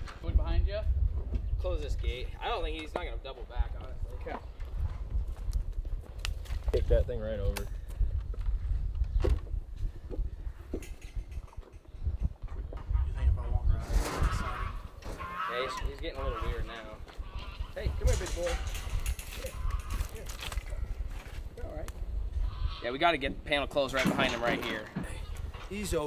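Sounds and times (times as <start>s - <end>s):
low rumble on microphone: 3.5s - 15.2s.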